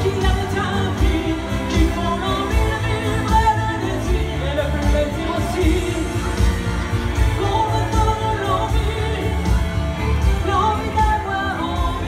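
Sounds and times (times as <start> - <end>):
music with steady bass beat: 0.0 - 12.0
woman singing into microphone: 0.0 - 12.0.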